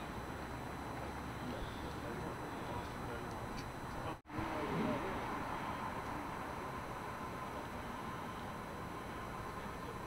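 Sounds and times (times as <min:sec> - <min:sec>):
city street hum and hiss: 0:00.0 - 0:10.0.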